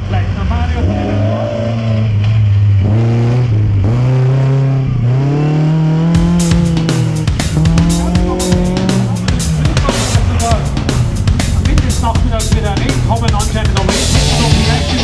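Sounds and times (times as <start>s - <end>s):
car engine revving hard: 0.0s - 15.0s
music with a drumbeat: 6.0s - 15.0s.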